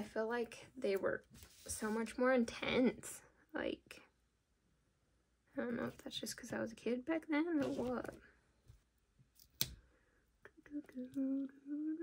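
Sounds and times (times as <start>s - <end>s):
woman humming: 10.5s - 12.0s.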